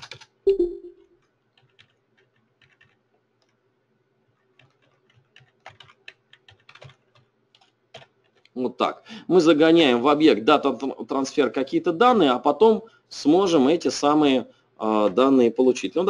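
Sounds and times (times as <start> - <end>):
computer keyboard typing: 0.0 - 3.6, 4.3 - 8.6.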